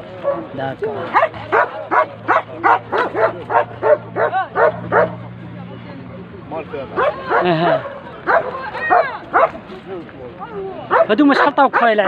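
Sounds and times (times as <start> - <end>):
dog yapping: 1.1 - 5.1, 7.0 - 9.6.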